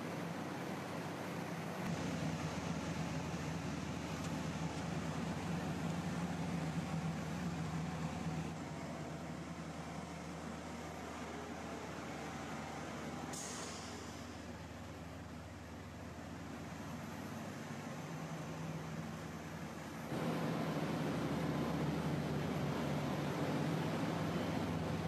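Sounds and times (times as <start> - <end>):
indoor machinery hum: 0.0 - 25.0.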